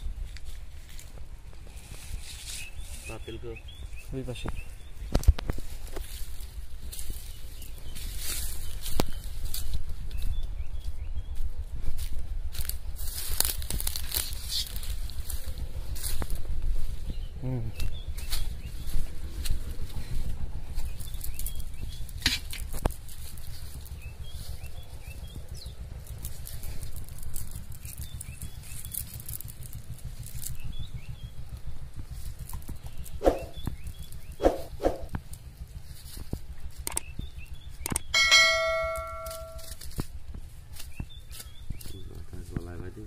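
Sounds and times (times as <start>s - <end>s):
low rumble on microphone: 0.0s - 43.0s
sharp crackles: 0.0s - 43.0s
notification bell ding: 38.2s - 39.7s.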